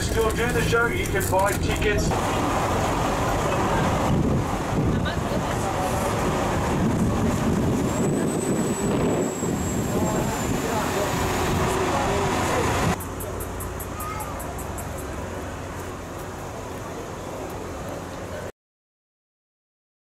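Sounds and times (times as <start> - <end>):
voices of people: 0.0 - 18.5
wind rumbling on microphone: 2.0 - 13.0.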